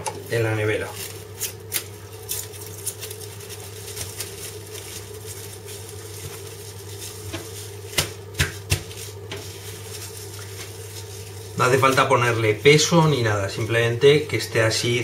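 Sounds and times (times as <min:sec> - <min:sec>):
steady low hum: 0:00.0 - 0:15.0
cling film crinkling: 0:00.8 - 0:13.8.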